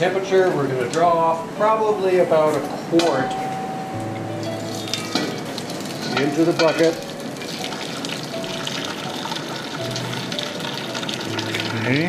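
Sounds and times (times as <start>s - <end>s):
syrup boiling and sizzling: 4.6s - 12.0s
syrup running into metal bucket: 4.8s - 12.0s.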